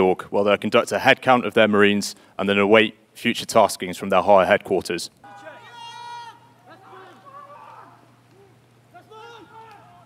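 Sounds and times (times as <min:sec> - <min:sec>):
distant men shouting calls: 0:05.2 - 0:10.0.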